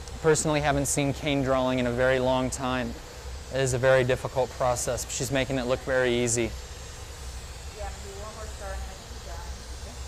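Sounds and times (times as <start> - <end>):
gas burners roaring: 0.0 - 10.0
hand torch hissing: 0.0 - 10.0.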